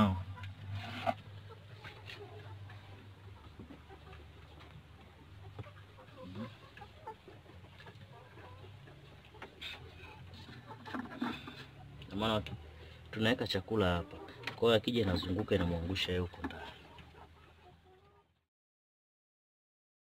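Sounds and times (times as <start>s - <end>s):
chickens clucking: 0.0s - 18.4s.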